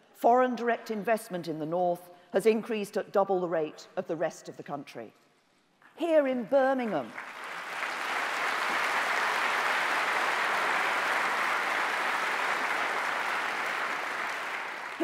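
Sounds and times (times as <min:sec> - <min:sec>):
audience applauding: 0:07.1 - 0:15.0.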